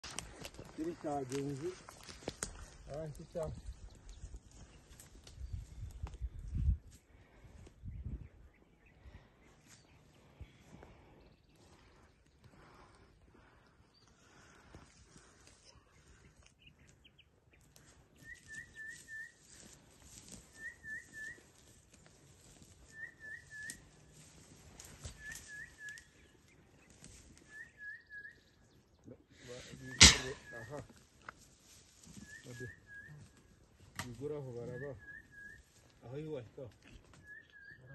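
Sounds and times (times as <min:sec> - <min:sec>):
rustling near microphone: 0:00.0 - 0:07.4, 0:17.6 - 0:27.6, 0:29.5 - 0:36.0
bird whistling song: 0:18.2 - 0:19.4, 0:20.5 - 0:21.5, 0:22.9 - 0:24.1, 0:25.0 - 0:26.3, 0:27.4 - 0:28.6, 0:32.2 - 0:33.4, 0:34.6 - 0:35.8, 0:37.2 - 0:37.9.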